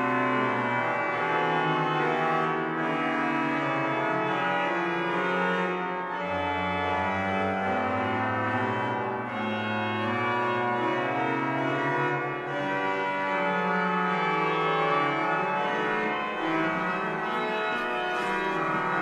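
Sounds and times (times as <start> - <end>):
pipe organ playing chords: 0.0 - 19.0.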